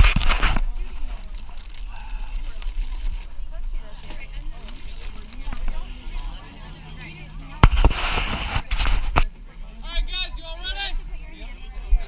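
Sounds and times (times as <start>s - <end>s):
background voices: 0.0s - 9.8s
brief rush of noise: 7.6s - 9.3s.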